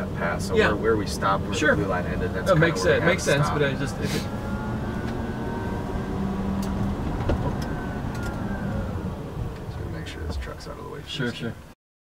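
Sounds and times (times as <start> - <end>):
electric drive whine: 0.0 - 10.9
road and tyre rumble: 0.0 - 11.7.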